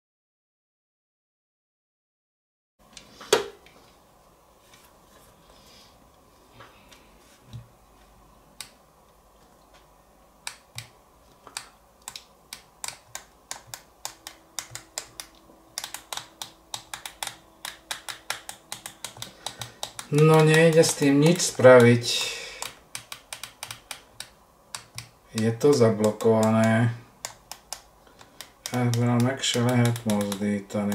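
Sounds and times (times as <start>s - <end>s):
push buttons clicking: 10.4s - 30.9s.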